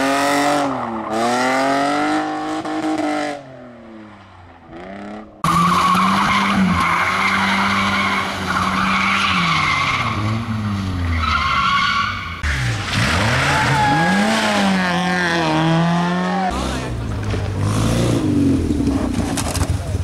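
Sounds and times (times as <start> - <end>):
car engines revving: 0.0 - 20.0
tyres skidding and squealing: 0.0 - 20.0.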